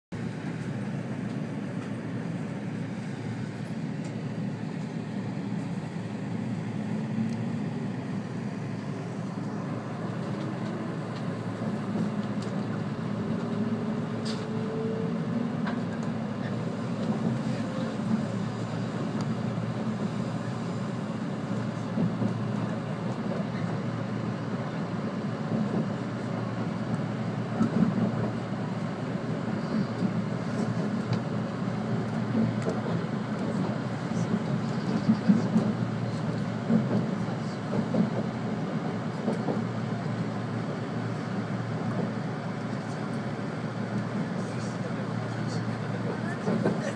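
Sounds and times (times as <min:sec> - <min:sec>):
train wheels rumbling on rails: 0:00.2 - 0:46.9
train bumps: 0:32.3 - 0:38.3.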